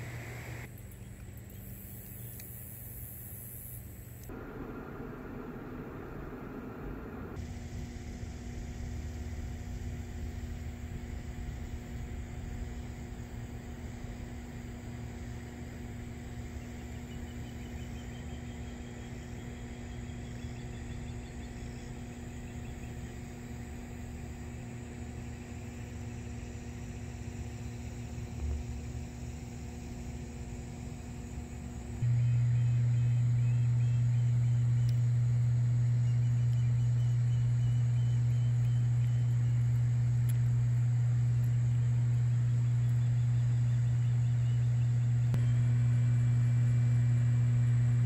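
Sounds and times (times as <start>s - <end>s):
transformer electrical hum: 0.0s - 48.0s.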